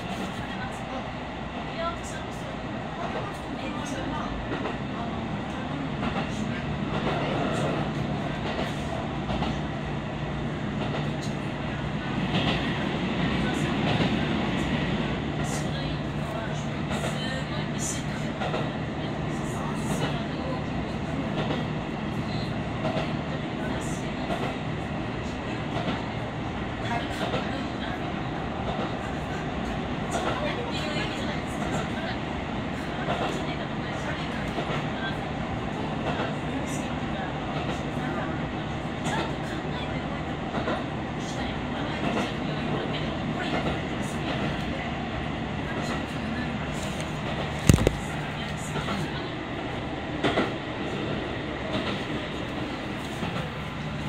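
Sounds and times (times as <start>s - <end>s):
railcar engine hum: 0.0s - 54.0s.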